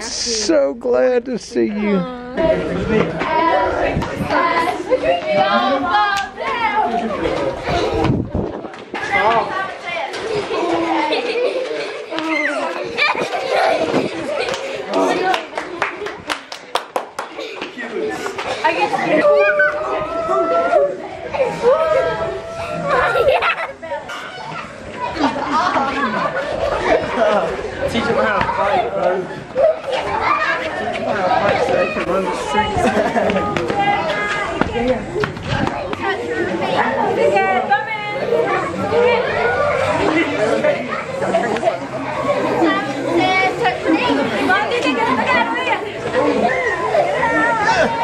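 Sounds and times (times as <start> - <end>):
children chattering: 0.0 - 48.0.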